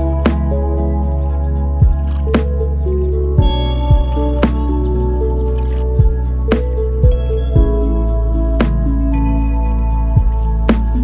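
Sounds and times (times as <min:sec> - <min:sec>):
bass line: 0:00.0 - 0:11.0
mellow chords: 0:00.0 - 0:11.0
kick drum: 0:01.8 - 0:02.1, 0:03.4 - 0:04.2, 0:06.0 - 0:06.2, 0:07.0 - 0:07.8, 0:10.2 - 0:10.4.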